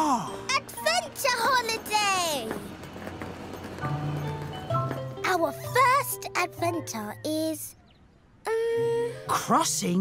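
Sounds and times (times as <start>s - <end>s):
cartoon background music: 0.0s - 2.4s, 4.5s - 7.7s.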